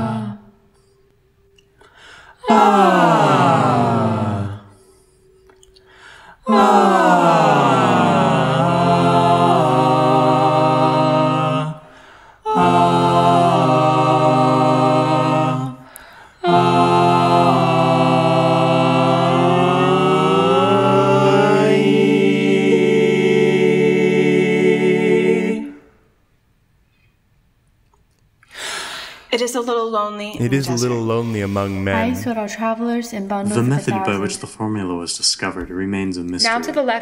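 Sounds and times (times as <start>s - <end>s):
a cappella voices sliding down: 0.0s - 1.0s, 1.8s - 26.0s, 30.4s - 32.3s, 33.4s - 34.4s.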